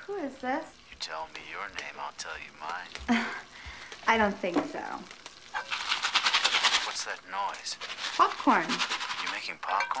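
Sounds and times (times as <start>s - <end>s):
popcorn popping in a pan: 0.0s - 10.0s.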